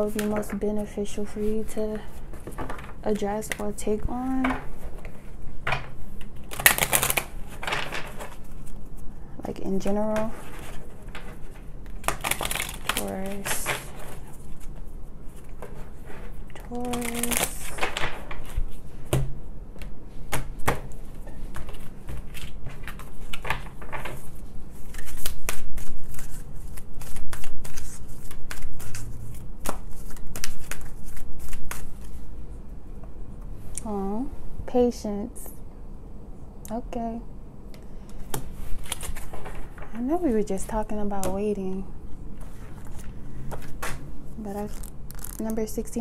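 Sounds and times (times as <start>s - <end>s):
cards being shuffled: 4.4s - 9.0s, 9.8s - 19.2s, 19.8s - 32.2s, 38.1s - 40.0s, 42.4s - 46.0s.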